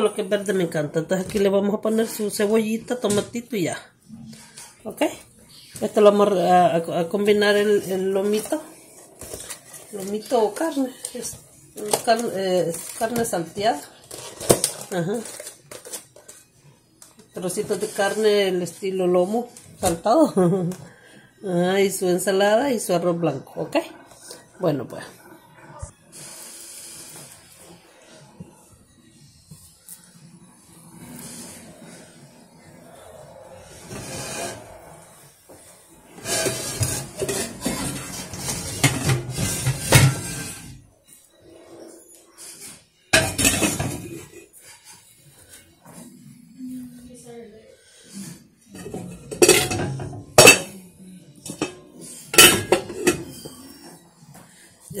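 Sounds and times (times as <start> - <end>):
pots and pans clanking: 36.2 - 40.8, 43.1 - 44.5, 48.7 - 50.8, 51.4 - 53.9.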